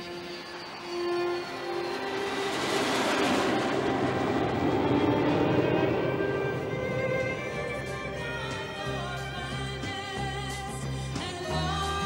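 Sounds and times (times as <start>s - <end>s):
faint film music: 0.0s - 12.0s
loud rushing roar: 0.6s - 9.9s.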